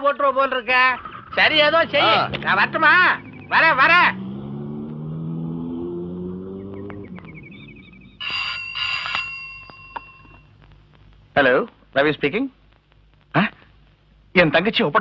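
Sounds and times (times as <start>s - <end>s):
low hum rising in pitch: 2.3s - 8.2s
bell ringing: 8.2s - 10.4s.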